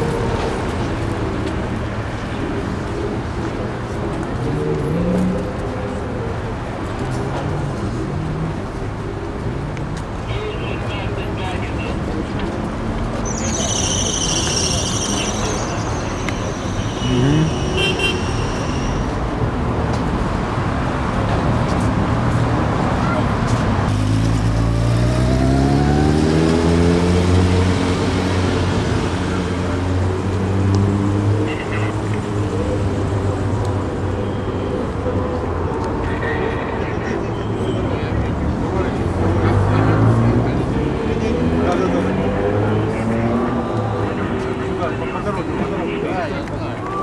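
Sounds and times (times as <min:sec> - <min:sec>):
crowd voices: 0:00.0 - 0:19.9, 0:25.2 - 0:47.0
car traffic: 0:00.0 - 0:47.0.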